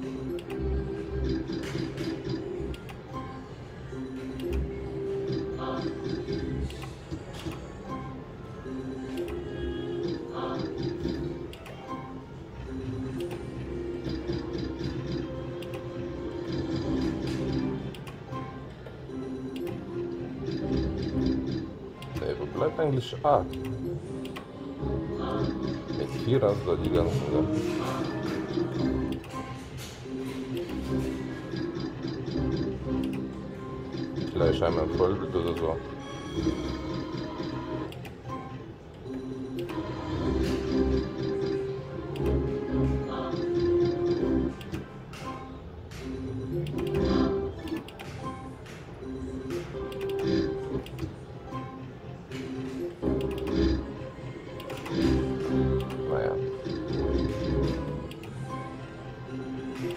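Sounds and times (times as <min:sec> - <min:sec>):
slot machine tune: 0:00.0 - 0:59.9
slot machine jingle: 0:25.2 - 0:44.6, 0:49.0 - 0:50.8, 0:52.8 - 0:59.6.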